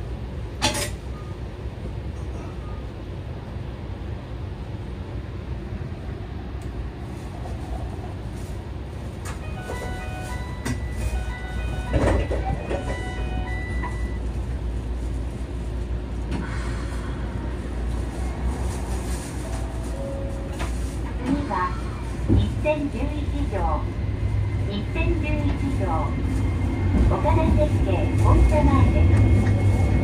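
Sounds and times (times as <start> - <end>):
streetcar humming: 0.0 - 30.0.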